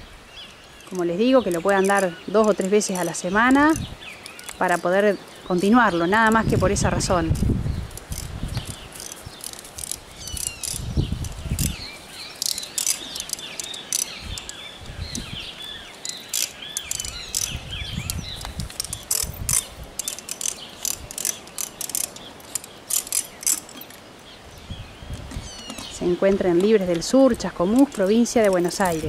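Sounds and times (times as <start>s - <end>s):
birds chirping: 0.0s - 29.0s
quick dry clicks: 16.0s - 24.0s.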